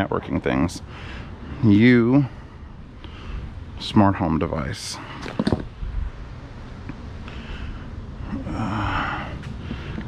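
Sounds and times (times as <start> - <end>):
knocks and rustles of handling: 5.2 - 5.7.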